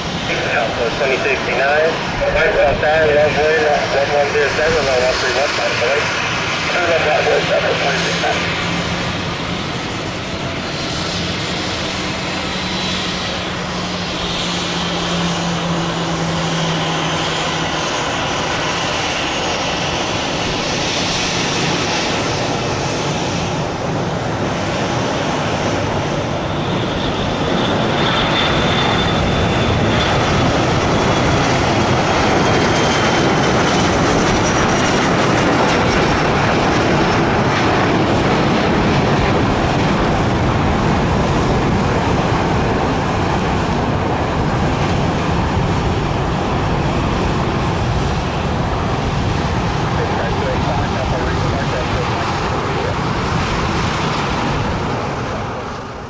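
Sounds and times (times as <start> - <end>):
jet engines at takeoff power: 0.0 - 56.0.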